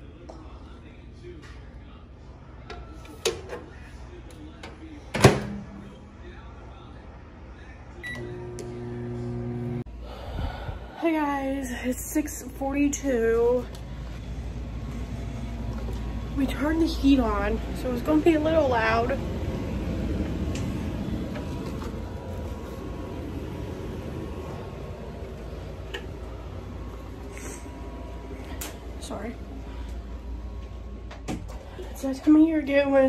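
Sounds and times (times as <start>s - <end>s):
central heating low rumble: 0.0s - 33.0s
microwave oven humming: 7.6s - 10.2s, 11.2s - 33.0s.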